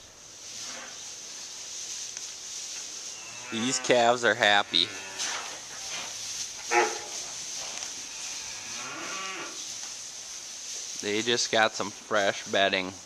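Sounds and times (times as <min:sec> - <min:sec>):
calves mooing: 0:03.2 - 0:05.6, 0:06.6 - 0:07.2, 0:08.0 - 0:09.6.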